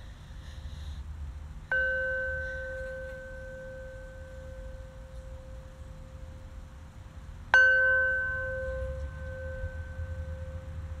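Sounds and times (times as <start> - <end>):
metal singing bowl ringing: 1.7 - 6.8, 7.5 - 11.0.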